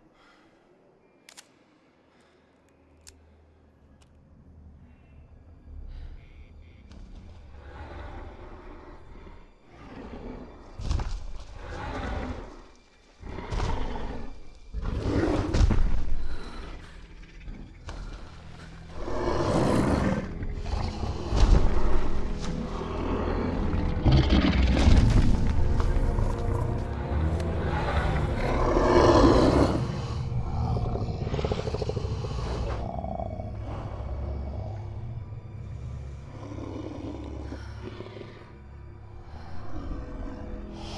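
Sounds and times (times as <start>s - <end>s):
orchestral film score: 0.0s - 40.9s
giant ape growling and breathing: 7.5s - 40.9s
deep rumble: 15.4s - 38.0s.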